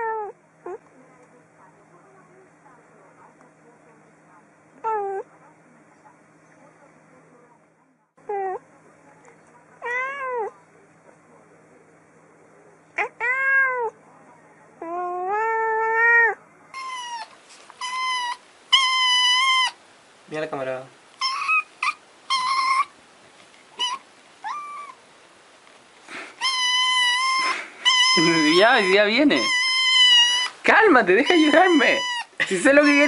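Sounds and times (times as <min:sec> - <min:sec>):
cat meowing: 0:00.0 - 0:00.8, 0:09.8 - 0:10.5, 0:13.0 - 0:14.0, 0:14.8 - 0:19.8, 0:21.2 - 0:22.9, 0:23.8 - 0:25.0, 0:26.4 - 0:30.6, 0:31.2 - 0:33.0
kitten meowing high-pitched: 0:26.4 - 0:30.6, 0:31.2 - 0:33.0.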